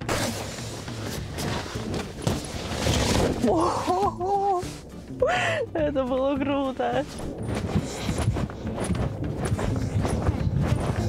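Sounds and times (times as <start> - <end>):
bounce house vinyl rustling: 0.0 - 5.2, 6.0 - 11.0.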